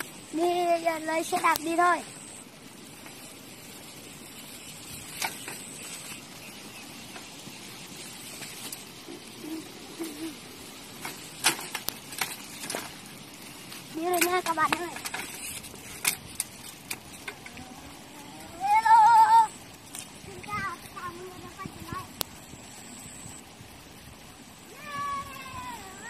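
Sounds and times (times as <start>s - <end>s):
bicycle clicks and rattles: 0.0s - 22.8s
steady outdoor hiss: 0.0s - 26.0s.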